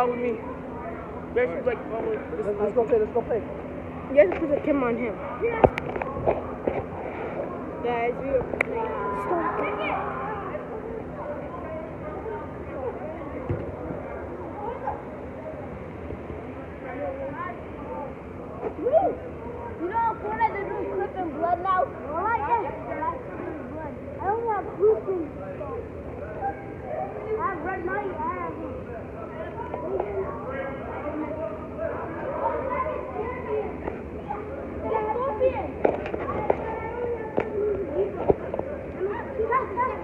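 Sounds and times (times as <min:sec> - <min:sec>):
children shouting and calling out: 0:08.6 - 0:13.1, 0:18.6 - 0:25.4, 0:26.2 - 0:28.7, 0:29.3 - 0:38.3, 0:38.9 - 0:40.0.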